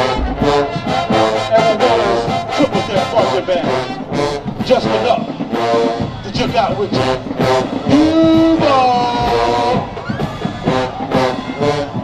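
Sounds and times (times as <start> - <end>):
marching band playing: 0.0 - 12.0.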